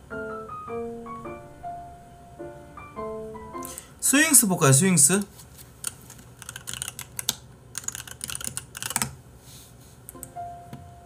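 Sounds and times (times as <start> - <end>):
computer keyboard typing: 5.8 - 9.2.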